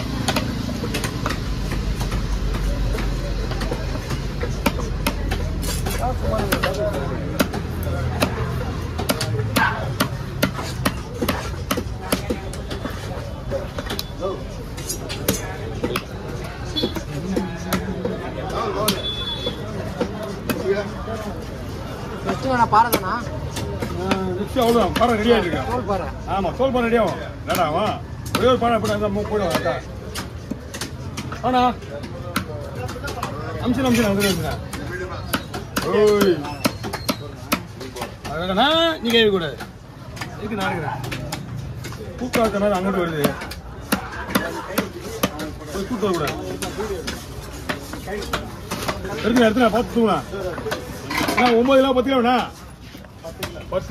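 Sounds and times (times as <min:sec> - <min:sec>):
cleaver chopping on wooden block: 0:00.0 - 0:13.0, 0:34.2 - 0:38.4, 0:39.0 - 0:49.5
market chatter: 0:00.0 - 0:53.9
people talking: 0:00.1 - 0:53.9.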